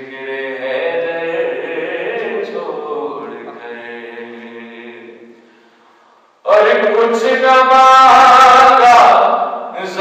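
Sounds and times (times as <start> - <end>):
man chanting: 0.0 - 5.3, 6.4 - 10.0.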